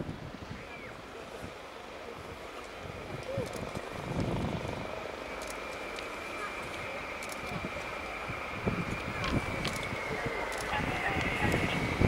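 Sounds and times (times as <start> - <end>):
distant jet roar with high whine: 0.0 - 12.0.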